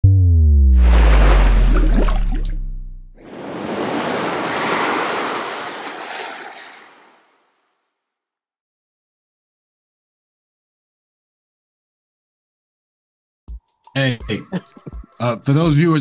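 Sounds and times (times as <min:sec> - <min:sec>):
deep booming tone sliding down: 0:00.0 - 0:03.2
rush of noise: 0:00.8 - 0:02.6
water splash rush: 0:00.8 - 0:07.6.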